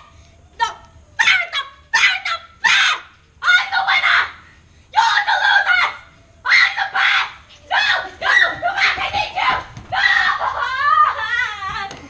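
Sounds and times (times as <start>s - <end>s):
child's shrill squawking cries: 0.6s - 4.4s, 5.0s - 11.8s.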